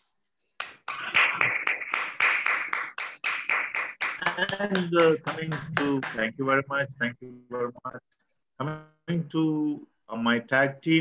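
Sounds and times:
hands clapping: 0:00.6 - 0:06.3.

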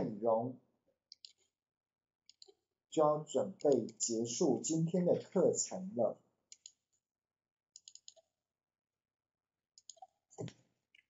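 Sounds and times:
computer mouse clicks: 0:01.1 - 0:01.5, 0:06.5 - 0:06.8, 0:07.8 - 0:08.2, 0:09.8 - 0:10.6.

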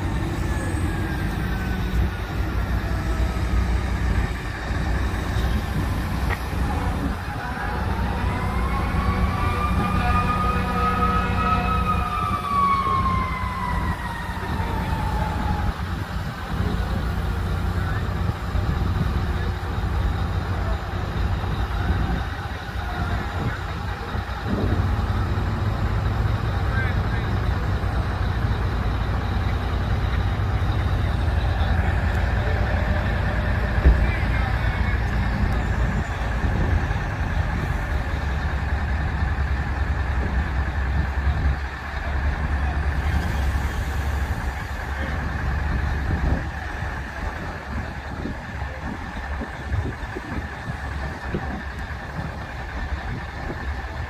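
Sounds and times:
diesel engine running under load: 0:00.0 - 0:54.0.

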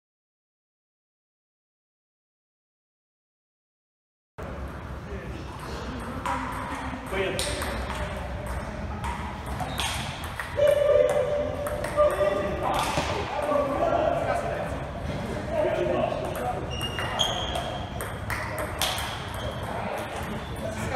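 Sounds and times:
voices talking: 0:05.0 - 0:20.9
table tennis ball clicking: 0:16.3 - 0:20.3.

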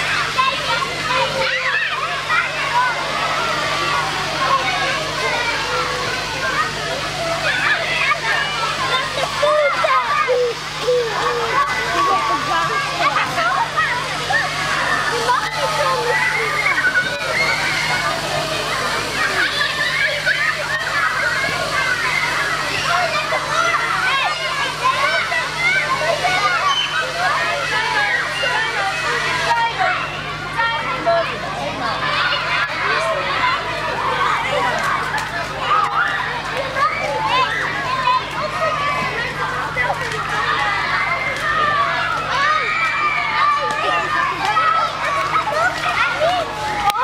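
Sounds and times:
splashing water: 0:00.0 - 0:29.8
children shouting and shrieking: 0:00.0 - 0:47.0.

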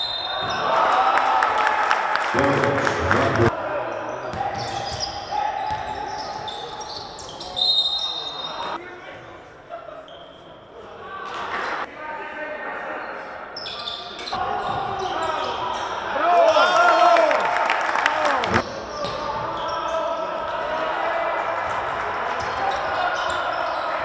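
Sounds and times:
high-pitched shoe squeaks: 0:04.6 - 0:08.8.

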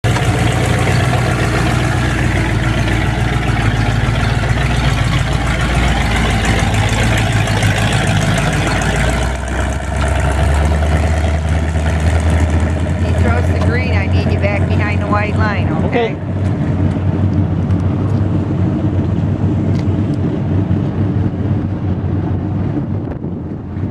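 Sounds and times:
loud car engine running: 0:00.0 - 0:23.9.

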